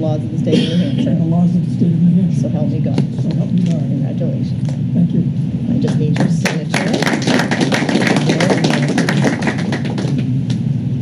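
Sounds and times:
people applauding: 5.9 - 10.6.

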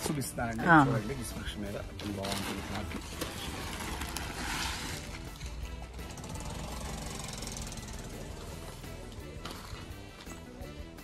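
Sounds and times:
fabric and plastic wrapping rustling: 0.0 - 5.6
background music: 0.0 - 11.0.

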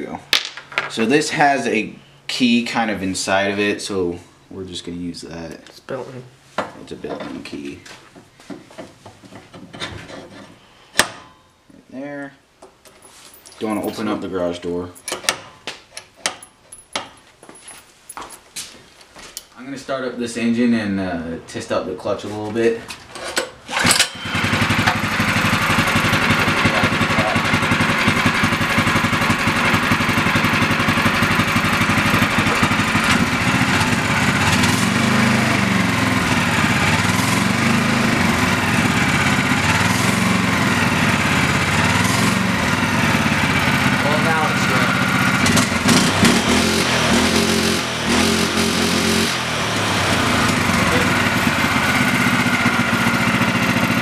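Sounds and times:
small gas engine starting and revving: 23.6 - 54.0.

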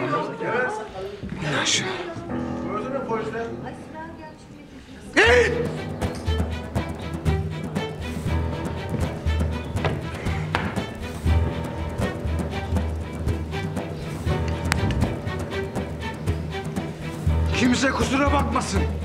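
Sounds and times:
music with pulsing bass: 5.6 - 19.0.

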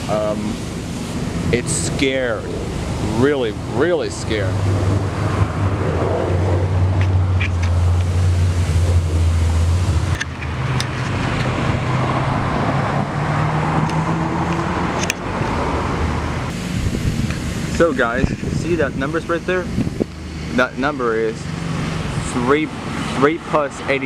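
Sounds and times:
vehicle engine humming: 0.0 - 24.0
car driving past: 4.4 - 16.6.

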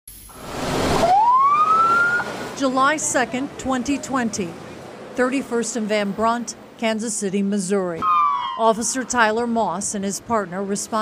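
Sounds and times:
rushing noise: 0.1 - 3.6
siren wailing upward: 0.4 - 2.6, 8.0 - 9.1.

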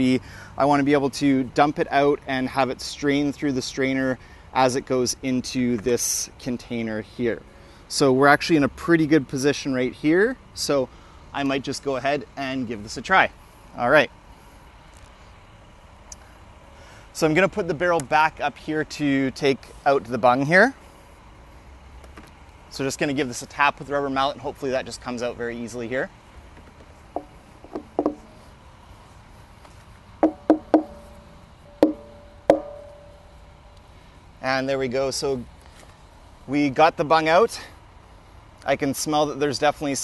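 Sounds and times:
rubber mallet knocking on barrel: 27.2 - 28.3, 30.2 - 31.2, 31.8 - 33.1
barrel ringing tone: 30.2 - 33.4.

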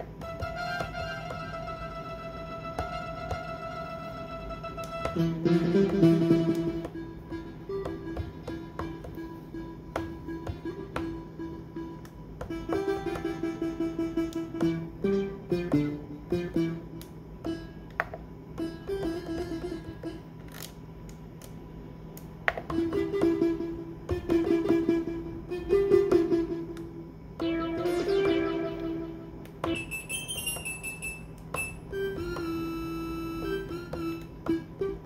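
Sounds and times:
synthesizer plucked notes: 0.0 - 17.7, 22.7 - 30.7.

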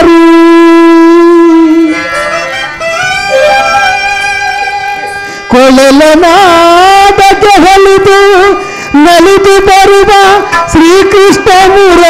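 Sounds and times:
reed instrument holding long notes: 0.0 - 6.0.

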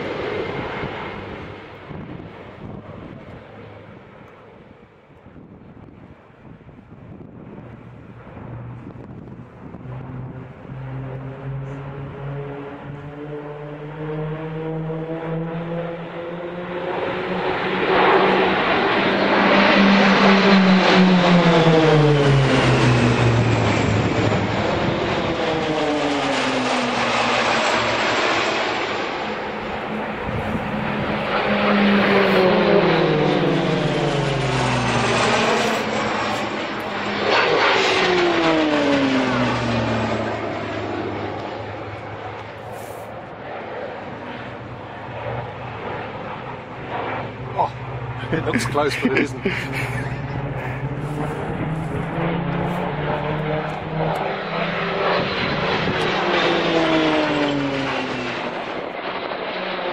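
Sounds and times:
propeller aircraft flying overhead: 0.0 - 59.9.

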